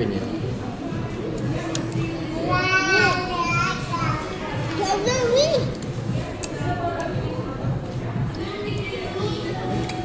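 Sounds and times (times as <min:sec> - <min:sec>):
background chatter: 0:00.0 - 0:10.0
child making wordless sounds: 0:02.5 - 0:05.8.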